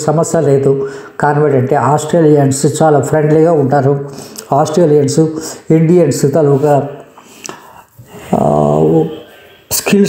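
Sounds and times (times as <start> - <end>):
man narrating: 0.0 - 7.2, 8.0 - 10.0.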